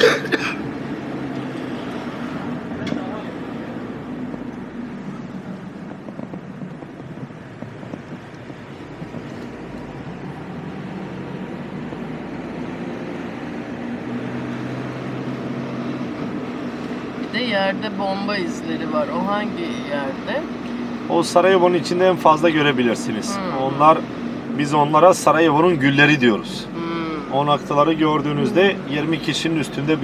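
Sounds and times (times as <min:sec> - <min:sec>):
car engine hum: 0:00.0 - 0:30.0
tyre and road noise: 0:00.0 - 0:30.0.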